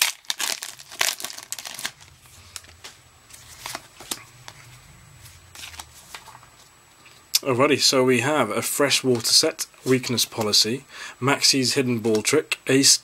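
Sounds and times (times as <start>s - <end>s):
foil wrapper tearing and crinkling: 0.0s - 2.7s.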